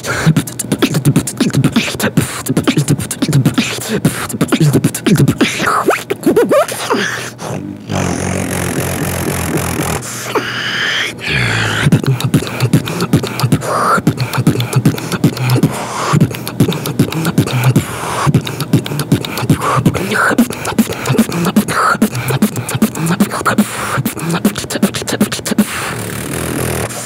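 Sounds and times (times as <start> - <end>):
person beatboxing: 0.0 - 27.0
low humming bass tone: 7.5 - 10.2.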